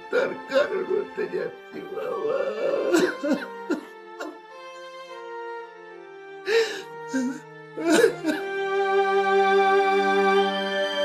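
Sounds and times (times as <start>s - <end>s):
soft background music: 0.0s - 11.0s
man sobbing: 1.8s - 4.5s, 6.5s - 8.5s.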